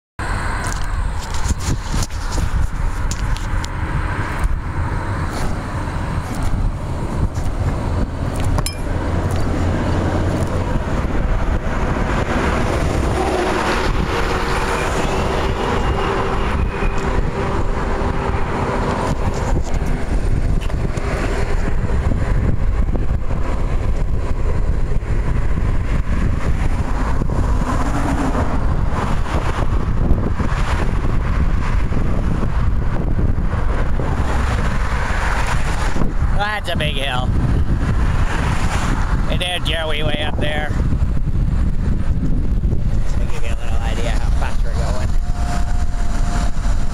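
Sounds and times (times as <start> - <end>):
tyres on asphalt: 0.2 - 46.9
wind over microphone: 0.2 - 46.9.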